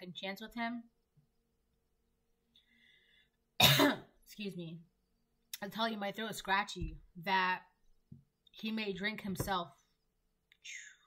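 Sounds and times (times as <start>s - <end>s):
woman coughing: 3.6s - 4.2s.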